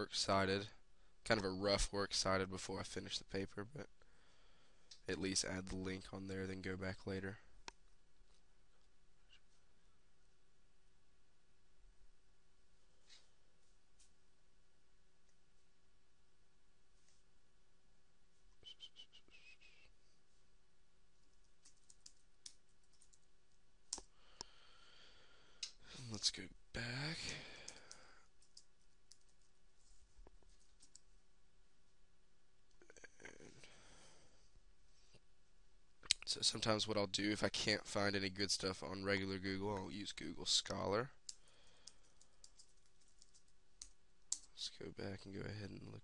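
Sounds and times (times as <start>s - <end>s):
faint keyboard typing: 21.1s - 24.6s, 25.4s - 31.2s, 39.7s - 44.7s
sharp keyboard clicks: 21.2s - 23.3s, 41.3s - 44.6s.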